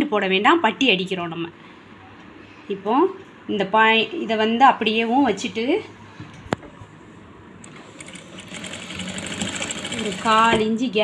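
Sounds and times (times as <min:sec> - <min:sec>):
woman's voice: 0:00.0 - 0:01.6, 0:02.7 - 0:06.0, 0:10.0 - 0:11.0
sewing machine stitching: 0:07.6 - 0:10.7.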